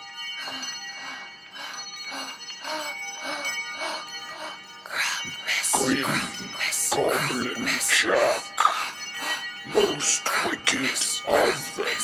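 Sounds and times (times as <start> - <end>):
bells shaken rhythmically: 0.0 - 12.0
sustained ringing bell tones: 0.0 - 12.0.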